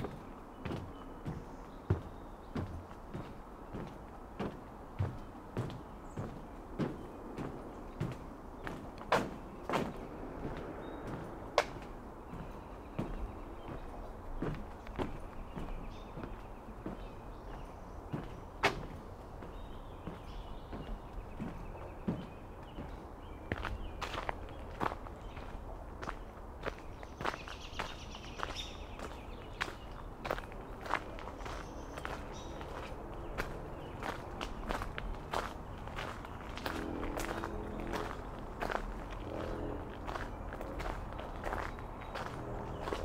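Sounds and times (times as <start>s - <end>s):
footsteps on gravel: 0.0s - 43.0s.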